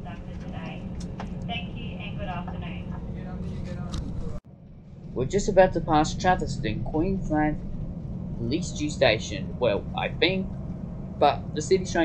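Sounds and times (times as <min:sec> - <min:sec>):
train rumble inside carriage: 0:00.0 - 0:12.0
faint voices: 0:01.5 - 0:04.4, 0:05.2 - 0:07.6, 0:08.4 - 0:10.5, 0:11.2 - 0:12.0.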